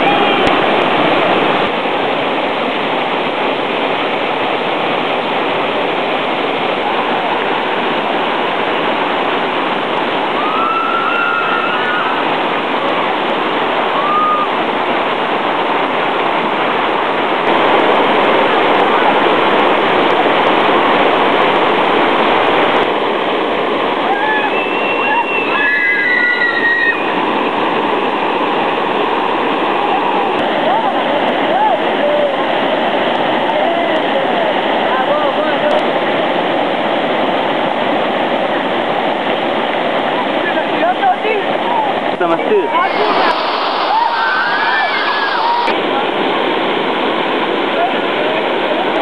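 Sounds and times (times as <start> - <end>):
river rapids rushing over rocks: 0.0 - 49.0.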